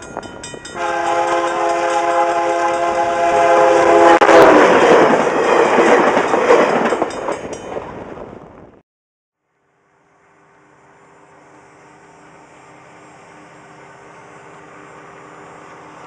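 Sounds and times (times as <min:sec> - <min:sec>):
train wheel noise: 0:00.0 - 0:08.6, 0:10.7 - 0:16.0
locomotive horn chord: 0:00.7 - 0:04.6, 0:09.9 - 0:16.0.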